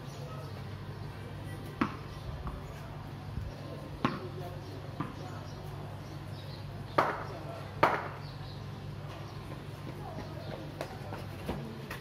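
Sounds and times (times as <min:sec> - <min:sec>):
sharp knocks of a ball: 0:01.8 - 0:02.6, 0:04.0 - 0:04.3, 0:05.0 - 0:05.2, 0:07.0 - 0:08.2.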